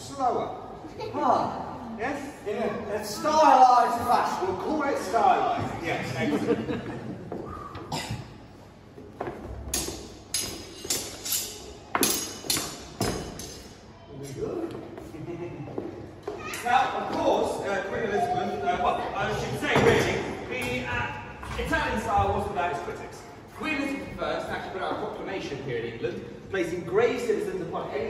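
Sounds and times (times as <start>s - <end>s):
steel blades clashing: 9.8s - 13.8s
voices: 16.3s - 24.7s.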